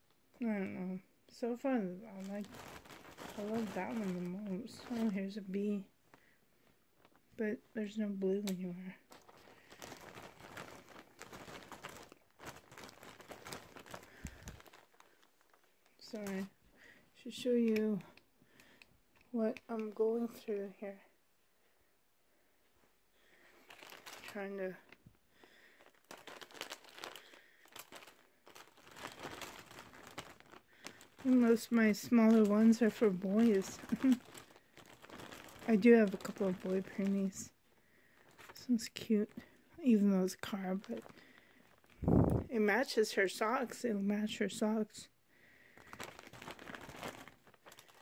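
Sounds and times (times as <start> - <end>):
plastic bag crinkling: 1.9 - 20.8, 23.2 - 43.8, 45.6 - 48.0
hand rummaging plastic objects: 2.0 - 5.8, 8.3 - 16.6, 23.6 - 37.5, 38.2 - 38.9, 39.9 - 42.4, 45.8 - 48.0.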